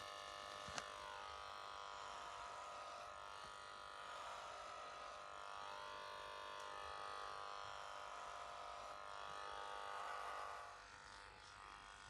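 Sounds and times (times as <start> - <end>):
hair clipper buzzing: 0.0 - 12.0.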